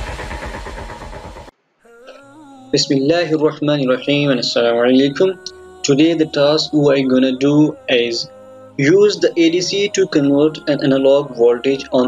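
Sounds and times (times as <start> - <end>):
loud pulsing rumble: 0.0 - 1.5.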